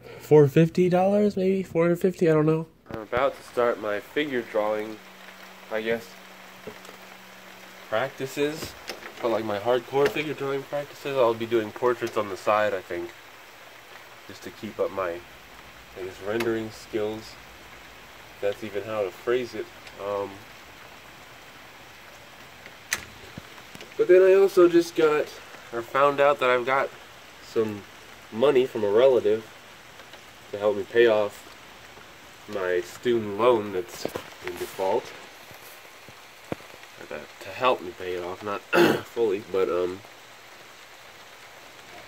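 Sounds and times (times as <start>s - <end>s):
rain falling: 0.0s - 42.0s.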